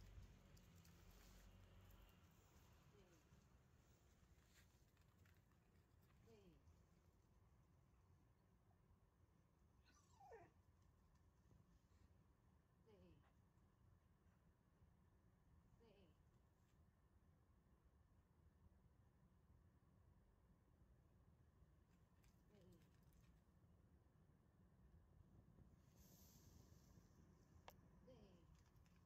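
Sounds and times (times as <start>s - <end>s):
dog whining: 9.8s - 10.6s.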